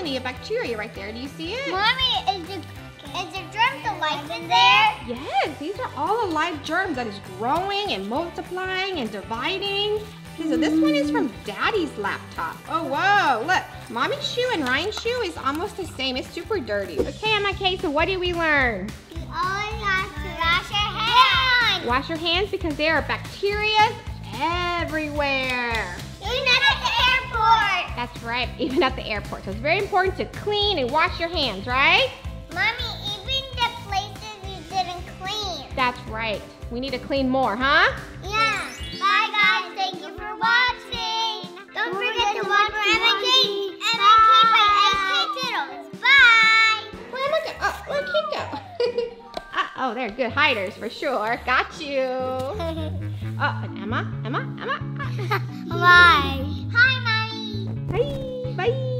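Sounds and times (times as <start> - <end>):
music with steady beat: 0.0 - 47.3, 52.6 - 58.8.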